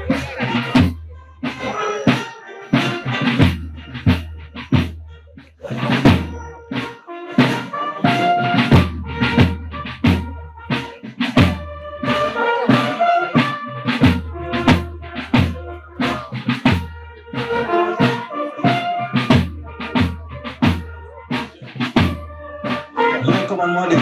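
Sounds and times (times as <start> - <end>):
bass drum beats: 0.0 - 1.8, 8.2 - 24.0
held brass notes: 0.0 - 24.0
marching band playing a march: 0.0 - 24.0
snare drum beats: 0.0 - 24.0.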